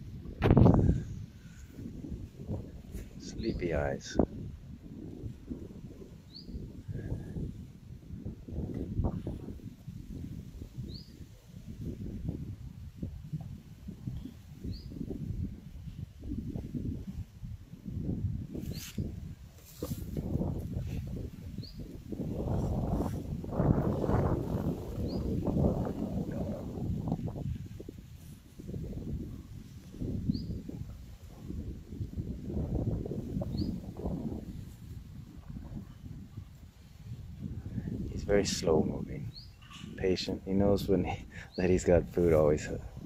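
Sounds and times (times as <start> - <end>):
wind noise on microphone: 0.0 - 43.0
small bird chirping: 6.3 - 6.6, 10.9 - 11.2, 14.7 - 15.0, 21.6 - 21.9, 25.0 - 25.4, 30.3 - 30.6, 33.5 - 33.8, 39.3 - 39.9.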